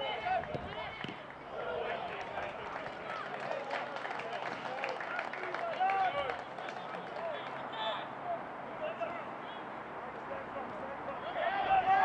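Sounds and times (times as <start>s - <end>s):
players and spectators shouting: 0.0s - 3.7s, 11.1s - 12.0s.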